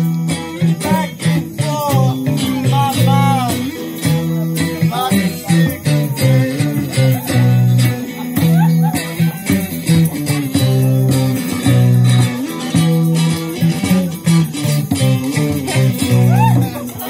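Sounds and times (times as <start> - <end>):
electric guitar band playing: 0.0 - 17.0.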